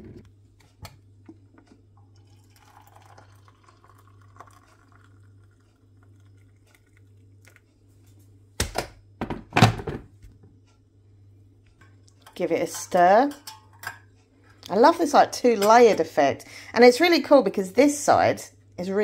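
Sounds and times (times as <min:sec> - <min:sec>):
water pouring into mug: 0:02.1 - 0:07.6.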